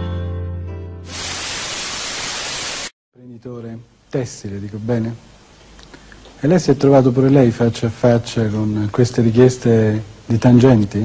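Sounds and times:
television static hiss: 0:01.1 - 0:05.7, 0:06.3 - 0:11.0.

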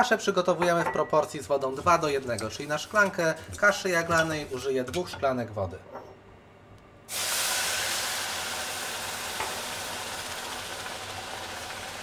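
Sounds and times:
water hissing in hot pan: 0:07.1 - 0:12.0.

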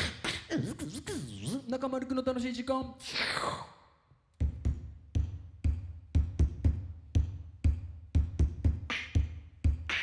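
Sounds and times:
beatboxed kick-drum thumps: 0:00.0 - 0:01.8, 0:04.3 - 0:10.0
beatboxing breathy sweep: 0:00.0 - 0:01.8, 0:07.5 - 0:10.0.

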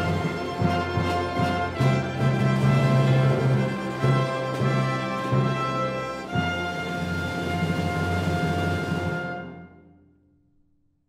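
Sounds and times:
low rumbling drum roll: 0:00.0 - 0:09.4
orchestra sustained chord: 0:00.0 - 0:09.8.

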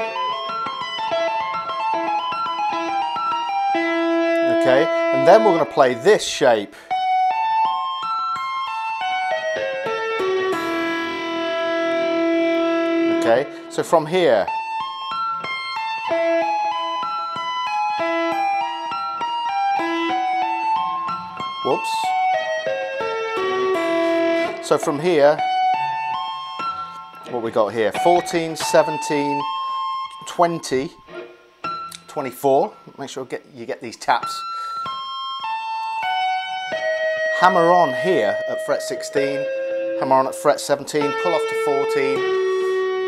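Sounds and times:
electric guitar arpeggios: 0:00.0 - 0:33.0, 0:34.1 - 0:43.0.

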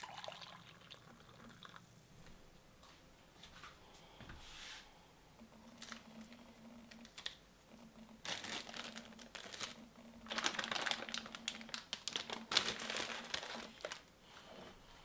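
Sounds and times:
faint steady hum: 0:00.0 - 0:15.0
plastic bag crinkling: 0:05.7 - 0:07.4, 0:08.2 - 0:14.1.

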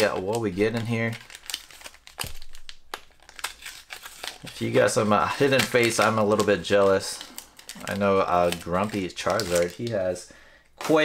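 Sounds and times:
foil wrapper crinkling: 0:00.0 - 0:10.2.

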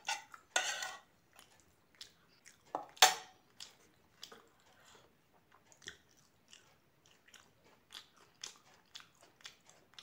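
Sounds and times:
chewing mouth sounds: 0:01.3 - 0:10.0.

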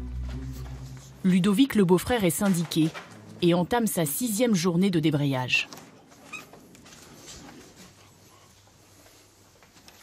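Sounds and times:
faint footsteps: 0:00.0 - 0:01.4
door squeaking open: 0:06.2 - 0:06.6.

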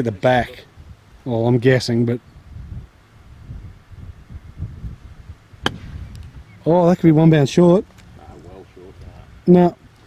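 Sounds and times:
wind rumble on microphone: 0:02.2 - 0:07.3
golf club striking ball: 0:05.6 - 0:06.4.

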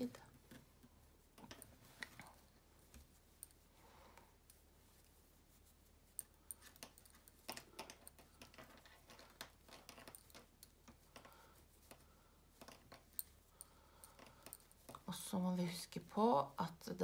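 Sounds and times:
knitting needles clicking: 0:00.0 - 0:03.6, 0:06.1 - 0:17.0
soft yarn handling: 0:00.0 - 0:17.0.

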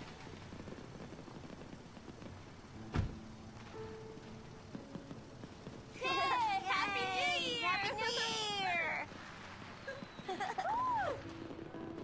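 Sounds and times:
background noise: 0:00.0 - 0:12.0.

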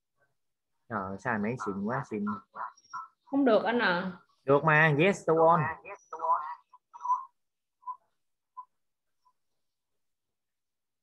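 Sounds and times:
person speaking over online call: 0:00.9 - 0:07.3.

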